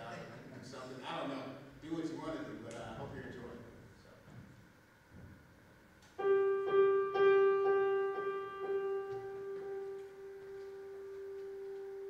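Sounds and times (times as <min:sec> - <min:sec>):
piano note struck repeatedly: 0:06.2 - 0:12.0.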